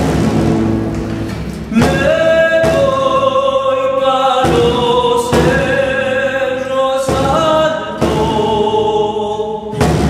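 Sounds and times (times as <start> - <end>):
strummed acoustic guitar: 0.0 - 10.0
men singing folk song: 1.7 - 10.0.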